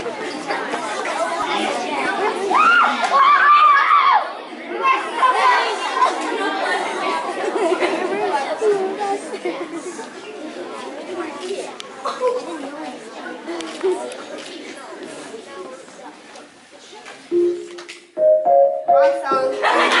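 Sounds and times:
audience chatter: 0.0 - 20.0.

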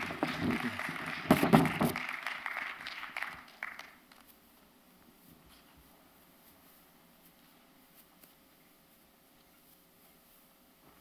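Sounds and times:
congregation applauding: 0.0 - 4.2.

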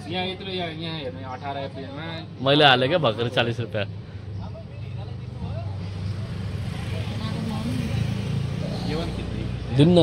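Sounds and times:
engine rumble: 0.0 - 10.0
faint voices murmuring: 0.0 - 10.0.

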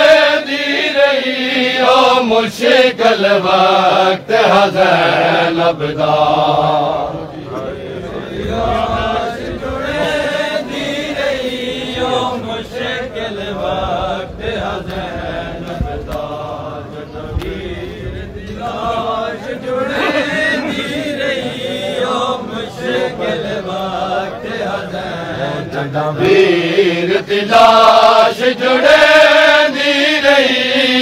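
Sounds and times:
crowd of men chanting: 0.0 - 31.0.

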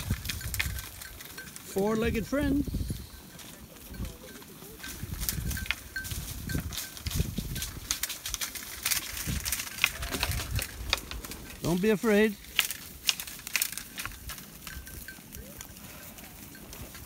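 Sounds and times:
sheep feeding on pods: 0.0 - 17.0
sheep bleating: 9.8 - 10.8.

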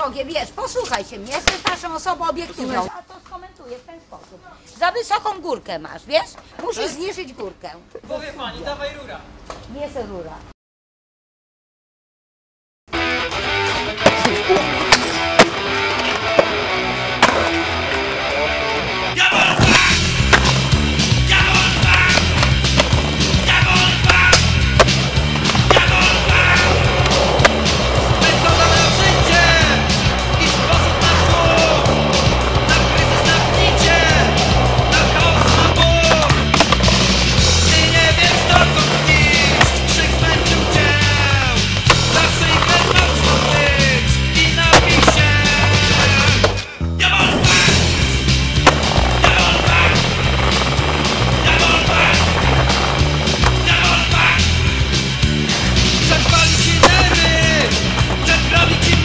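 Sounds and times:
skateboard wheels rolling on pavement: 13.0 - 46.6, 47.4 - 59.0
skateboard clacks and landings: 19.5 - 20.7, 21.6 - 43.7, 44.6 - 46.6, 48.6 - 53.8, 55.6 - 59.0.

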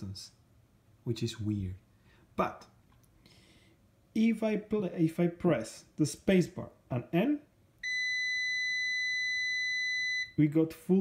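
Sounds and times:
multimeter high-pitched beep: 7.8 - 10.4.

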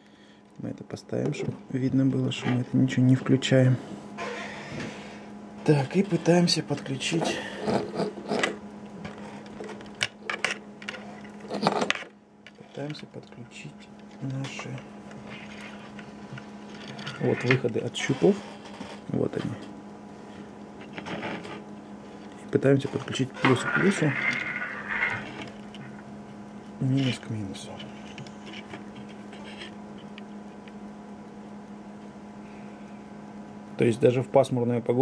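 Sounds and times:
low steady hum: 0.0 - 35.0
faint scratches and clicks: 7.6 - 19.7, 27.0 - 30.8.

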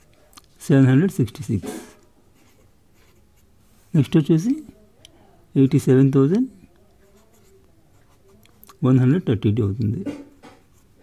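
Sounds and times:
pen scratching on paper: 7.0 - 8.3.

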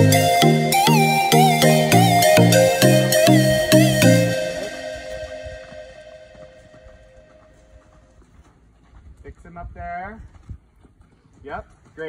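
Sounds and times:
background music: 0.0 - 7.6
horse hoofbeats on dirt: 6.4 - 12.0.

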